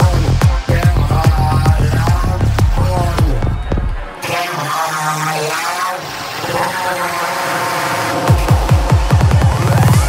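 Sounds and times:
swirling synth effects: 0:00.0 - 0:10.0.

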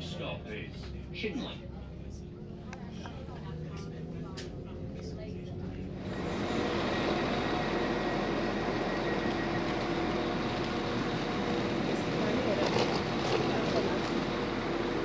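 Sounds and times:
low hum inside train carriage: 0:00.0 - 0:15.0
passing train rush: 0:00.0 - 0:15.0.

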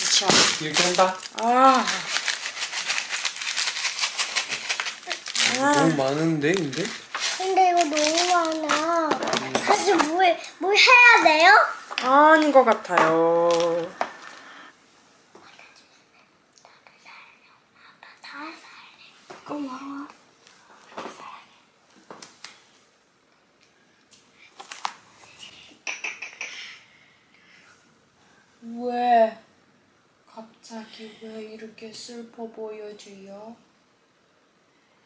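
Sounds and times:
seasoning packet rattling crinkle: 0:00.0 - 0:08.9
child whispering: 0:05.1 - 0:06.2, 0:15.4 - 0:20.1.

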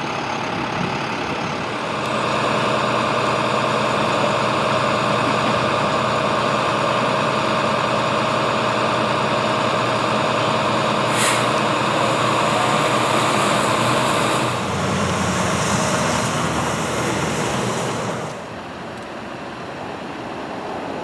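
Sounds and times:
truck engines idling: 0:00.0 - 0:20.9.

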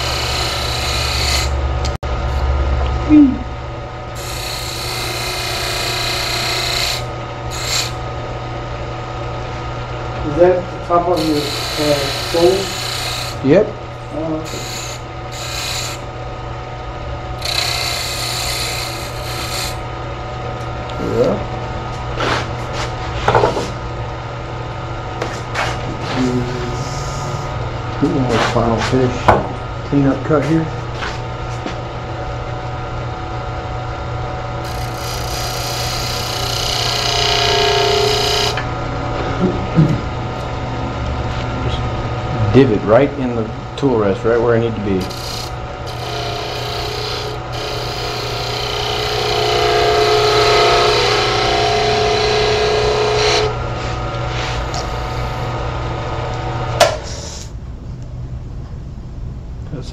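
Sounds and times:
turning tool scraping wood: 0:00.0 - 0:01.6, 0:04.2 - 0:08.0, 0:11.2 - 0:13.4, 0:14.5 - 0:16.0, 0:17.4 - 0:19.8, 0:34.6 - 0:38.6, 0:45.0 - 0:55.4
wood lathe running: 0:00.0 - 0:02.0, 0:04.1 - 0:08.0, 0:10.4 - 0:16.1, 0:17.4 - 0:19.9, 0:34.6 - 0:38.7, 0:44.7 - 0:53.6, 0:54.2 - 0:55.5.

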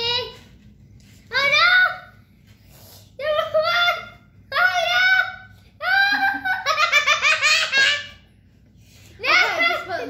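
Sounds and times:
young child laughing: 0:05.8 - 0:08.2.

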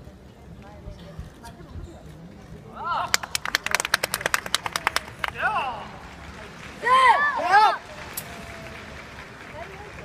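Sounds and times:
spectators clapping: 0:03.1 - 0:10.0.

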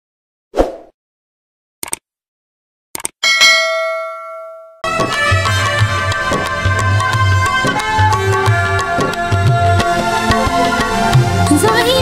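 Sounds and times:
notification bell ding: 0:03.2 - 0:04.8.

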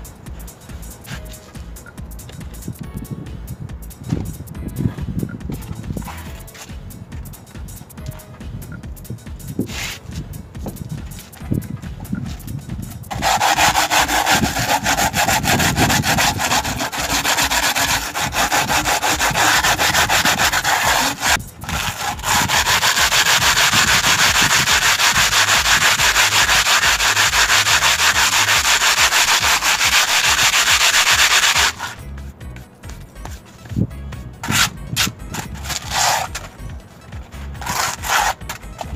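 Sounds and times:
sandpaper scraping cement: 0:00.8 - 0:01.5, 0:09.4 - 0:32.0, 0:34.4 - 0:36.6, 0:37.3 - 0:38.9.

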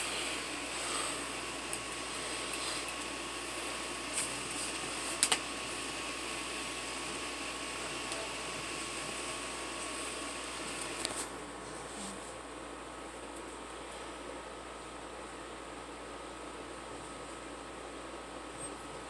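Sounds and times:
fan-like hiss: 0:00.0 - 0:19.0.

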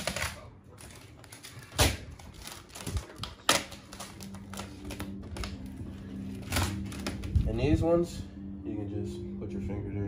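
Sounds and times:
vinyl film snapping: 0:00.0 - 0:05.7
vinyl film crackling: 0:00.0 - 0:07.6
low steady hum: 0:00.0 - 0:10.0.

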